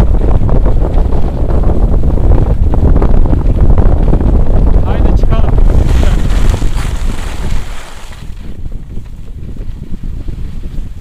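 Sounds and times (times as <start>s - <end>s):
wind buffeting microphone: 0.0s - 11.0s
snowboard scraping over snow: 5.5s - 11.0s.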